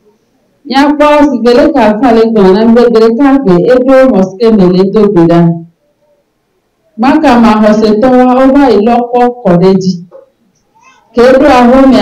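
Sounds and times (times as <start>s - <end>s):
woman's voice through microphone: 0.6s - 5.8s, 7.0s - 10.3s, 11.0s - 12.0s.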